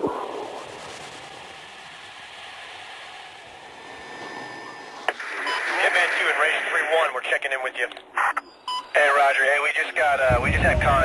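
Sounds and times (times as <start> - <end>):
radio click: 5.0 - 8.4
voice over two-way radio: 5.6 - 11.0.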